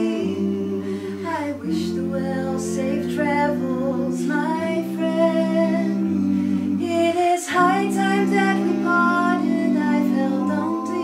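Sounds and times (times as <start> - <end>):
sustained low notes: 0.0 - 11.0
voice humming long note: 0.0 - 11.0.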